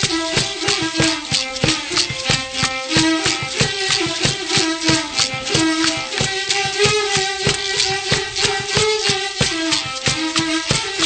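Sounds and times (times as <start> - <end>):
bowed fiddle melody: 0.0 - 11.0
hand drum beat: 0.0 - 11.0
rattles shaking: 0.0 - 11.0.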